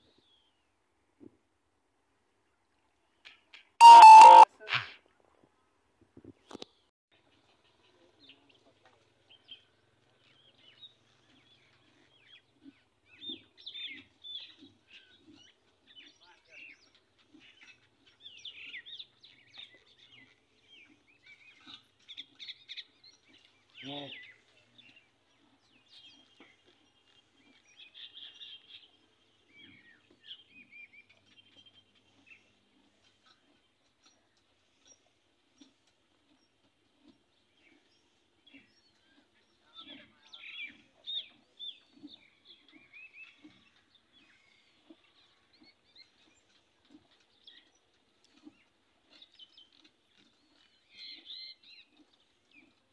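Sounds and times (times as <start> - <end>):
small birds chirping: 9.3 - 52.9.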